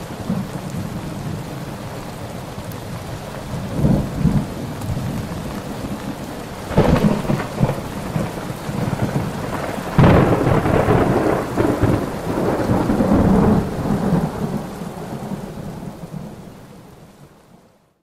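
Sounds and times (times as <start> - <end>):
rain falling: 0.0 - 18.0
thunder rolling: 3.5 - 16.4.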